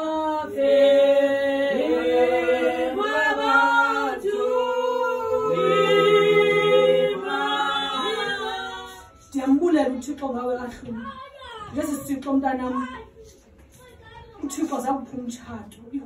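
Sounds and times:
voices singing in harmony: 0.0 - 9.3
woman speaking: 13.9 - 16.0.

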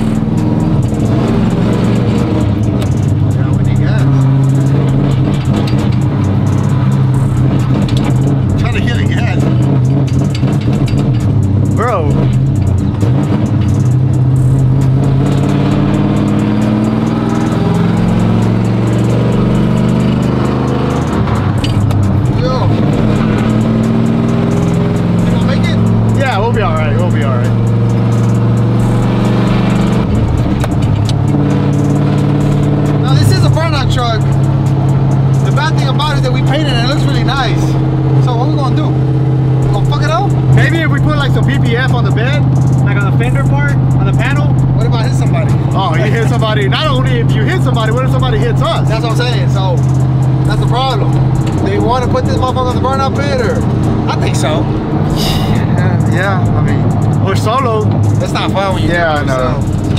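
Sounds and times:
truck engine running: 0.0 - 59.9.

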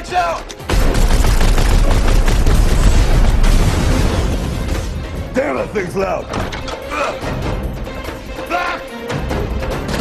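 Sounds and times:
explosions: 0.7 - 4.9.

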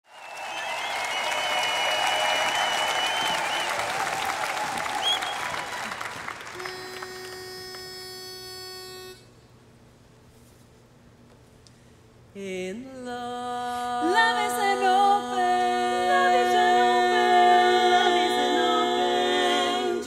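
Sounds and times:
whistles and cheers: 0.0 - 6.7
audience applause: 0.0 - 7.3.

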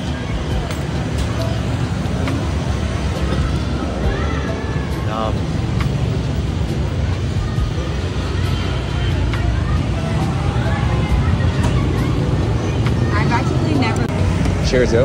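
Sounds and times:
low rumble of street traffic: 0.0 - 15.0.

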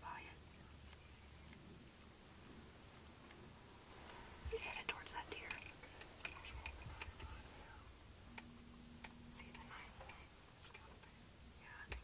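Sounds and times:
faint whispering: 0.0 - 1.8, 4.0 - 8.0, 9.3 - 12.0.

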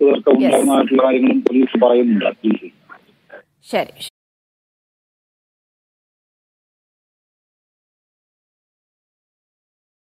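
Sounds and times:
man talking over telephone: 0.0 - 3.4.

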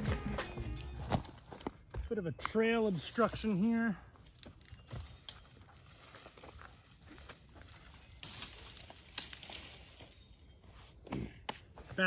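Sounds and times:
faint footsteps: 0.0 - 12.0
sticks snapping and leaves rustling: 2.4 - 10.2.

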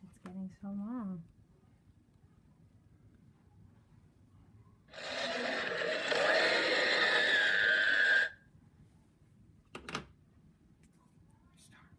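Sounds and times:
cartoon monster roar on television: 5.0 - 8.3
high strained tone: 5.0 - 8.4.

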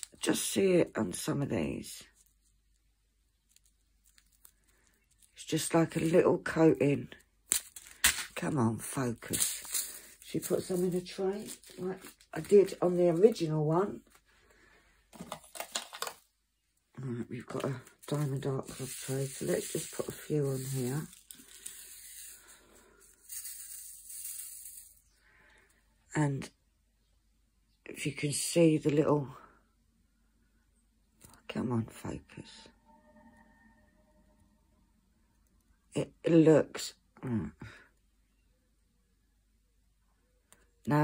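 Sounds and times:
plastic bag rustling: 2.0 - 6.2, 7.5 - 16.2, 17.4 - 25.0.

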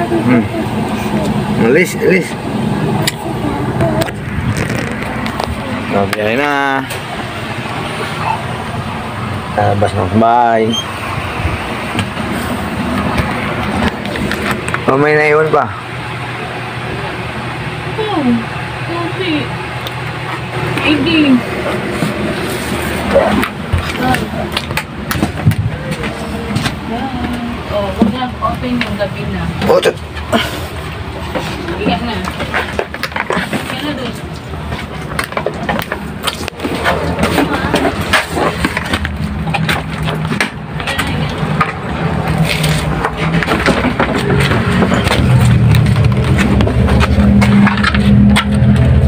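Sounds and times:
people talking: 0.0 - 7.0, 9.5 - 10.9, 14.8 - 15.8, 16.8 - 19.6, 20.8 - 21.5, 23.0 - 24.6, 25.6 - 30.6, 31.4 - 32.6, 33.4 - 34.4, 36.4 - 38.6, 40.8 - 41.8
vehicle rumble inside cabin: 0.0 - 49.0.

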